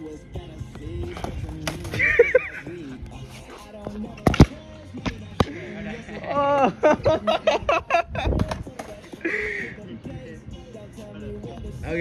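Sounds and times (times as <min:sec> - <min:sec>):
background music: 0:00.0 - 0:12.0
skateboard tail popping on concrete: 0:04.2 - 0:05.5.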